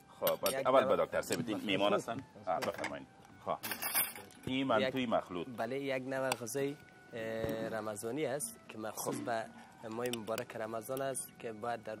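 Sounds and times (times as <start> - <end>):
men talking: 0.0 - 12.0
plates and cutlery clinking: 3.6 - 4.5.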